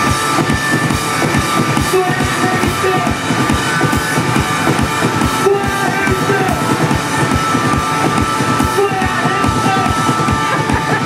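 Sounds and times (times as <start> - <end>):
distorted electric guitars: 0.0 - 11.0
drums beating fast rhythm: 0.0 - 11.0.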